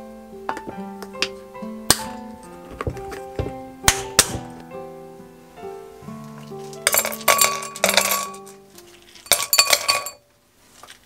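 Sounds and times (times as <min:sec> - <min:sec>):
acoustic guitar music: 0:00.0 - 0:09.3.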